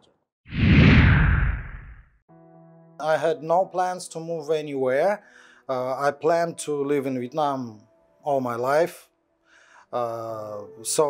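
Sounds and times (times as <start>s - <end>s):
deep rumble: 0.5s - 2.0s
whoosh sliding down in pitch: 0.5s - 2.0s.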